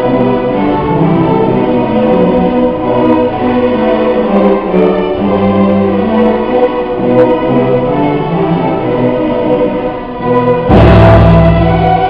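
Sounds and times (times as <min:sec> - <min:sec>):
orchestra loud held chord: 0:00.0 - 0:12.0
strings playing sustained notes: 0:00.0 - 0:12.0.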